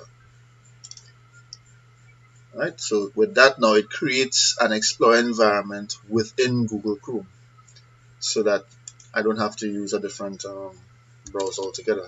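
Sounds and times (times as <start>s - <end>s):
faint low hum: 0.0s - 12.0s
computer mouse clicks: 0.8s - 1.7s, 8.8s - 9.2s.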